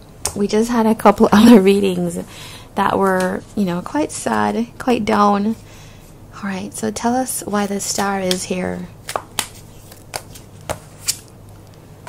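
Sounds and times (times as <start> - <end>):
cards rustling: 7.6 - 11.6
cards snapping: 9.0 - 11.3.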